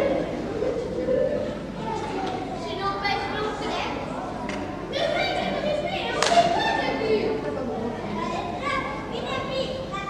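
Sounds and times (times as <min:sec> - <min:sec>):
children speaking: 0:00.0 - 0:10.0.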